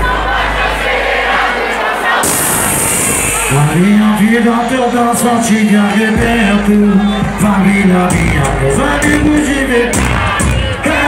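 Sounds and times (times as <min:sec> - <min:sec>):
concert crowd noise: 0:00.0 - 0:11.0
music from loudspeakers: 0:00.0 - 0:11.0.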